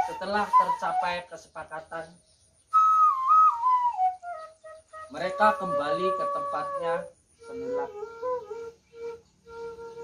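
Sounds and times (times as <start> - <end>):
bamboo flute melody: 0.0 - 1.4, 2.7 - 10.0.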